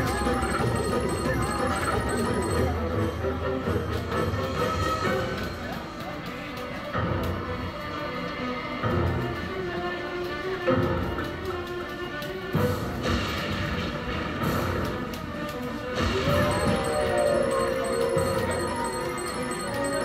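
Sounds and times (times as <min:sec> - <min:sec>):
spooky music loop: 0:00.0 - 0:07.5, 0:12.7 - 0:20.0.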